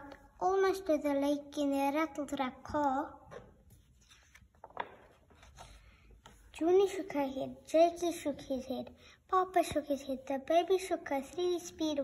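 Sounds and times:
paper page turning: 0:03.7 - 0:05.8.

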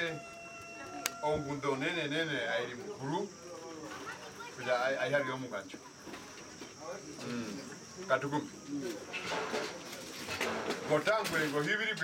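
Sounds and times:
people talking: 0:00.0 - 0:12.0.

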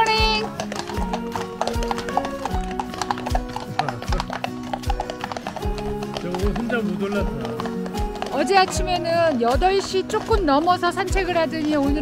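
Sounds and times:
background music with low beat: 0:00.0 - 0:12.0
horse hooves clip-clopping on tarmac: 0:00.0 - 0:12.0.

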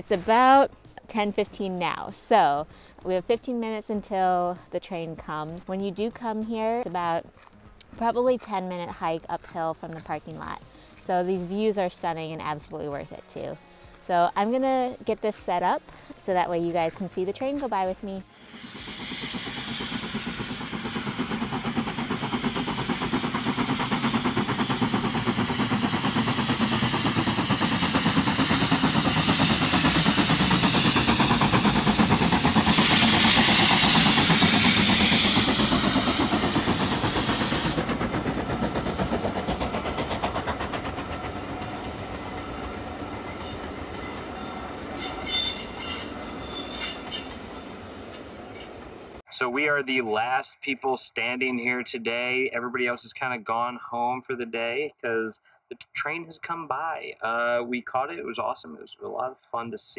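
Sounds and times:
carriages clickety-clack: 0:00.0 - 0:12.8, 0:19.7 - 0:49.2
steam locomotive working: 0:00.0 - 0:56.0
loud steam hiss: 0:18.2 - 0:43.2.

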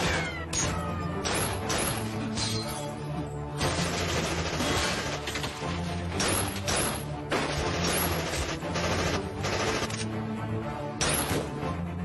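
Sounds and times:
gunshots: 0:03.6 - 0:10.0.

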